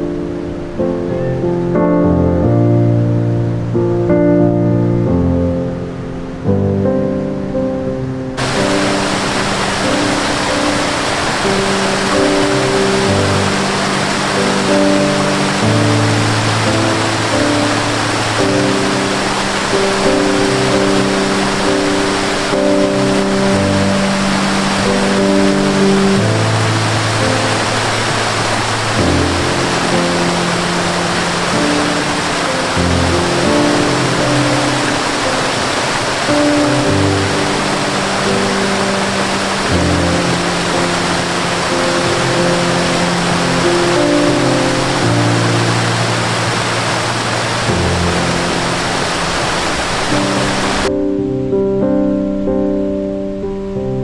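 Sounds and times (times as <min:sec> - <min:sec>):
calm instrumental music: 0:00.0 - 0:54.0
water flowing: 0:08.3 - 0:50.9.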